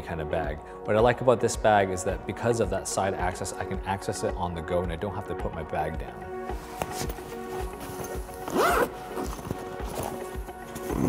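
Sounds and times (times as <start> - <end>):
background music with steady beat: 0.0 - 11.0
backpack zipper pulled open: 6.8 - 11.0.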